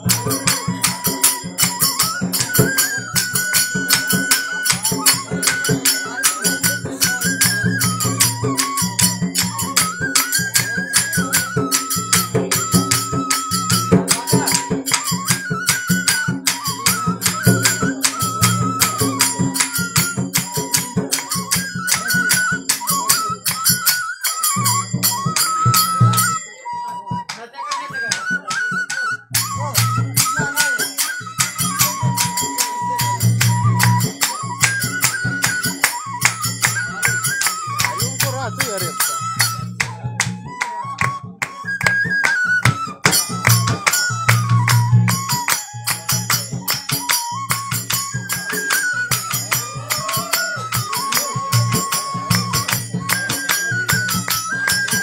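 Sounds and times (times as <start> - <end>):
drum and jingle beat: 0.0 - 55.0
high melody line: 0.0 - 55.0.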